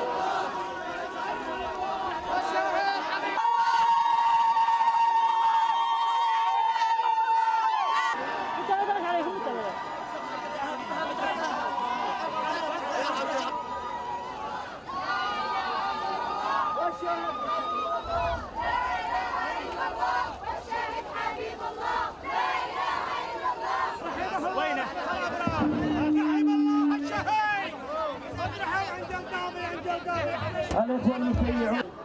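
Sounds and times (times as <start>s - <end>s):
crowd talking and calling out: 0.0s - 32.0s.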